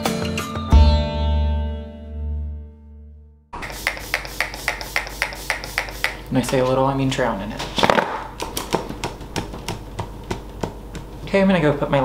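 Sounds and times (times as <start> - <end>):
spray bottle spritzes: 3.6 - 6.3.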